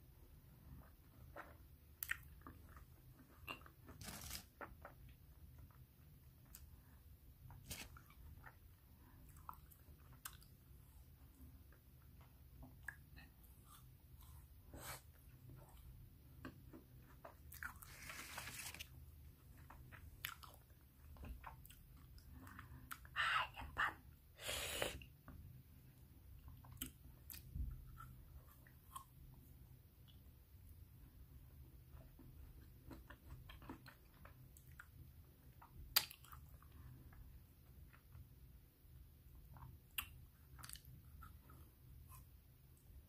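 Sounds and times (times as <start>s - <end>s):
faint chewing of hard ice cream: 0.3s - 23.2s, 25.0s - 43.0s.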